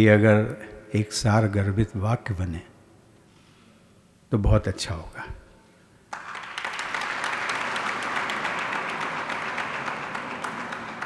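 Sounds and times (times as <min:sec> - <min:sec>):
audience applauding: 0:06.1 - 0:11.0.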